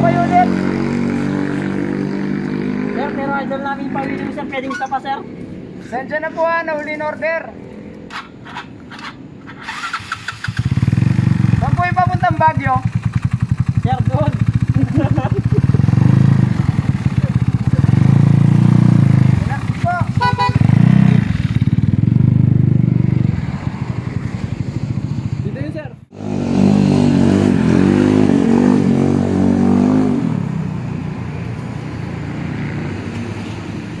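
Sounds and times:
voices: 2.6 - 7.8, 19.2 - 20.4
scooter engine running: 12.6 - 22.5.

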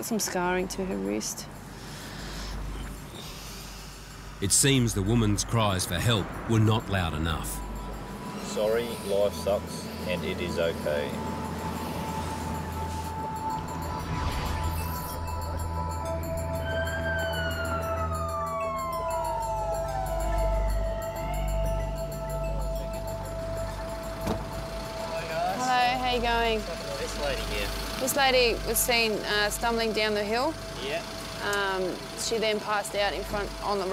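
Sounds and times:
voices: 0.0 - 1.7, 4.4 - 14.0, 19.4 - 33.9
low background music: 4.4 - 33.9
ambulance siren: 4.9 - 33.9.

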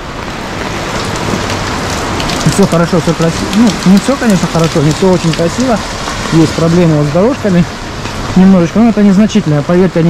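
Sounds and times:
rain pattering on umbrella: 0.0 - 10.0
river rushing through channel: 0.0 - 10.0.

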